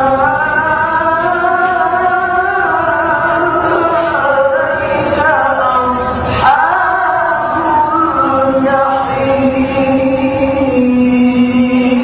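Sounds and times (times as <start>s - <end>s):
man chanting a long note: 0.0s - 12.0s.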